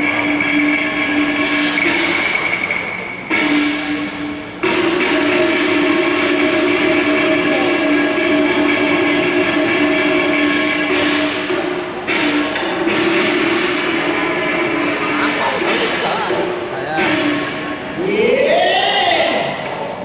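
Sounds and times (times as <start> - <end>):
reedy horn notes: 3.3 - 18.6.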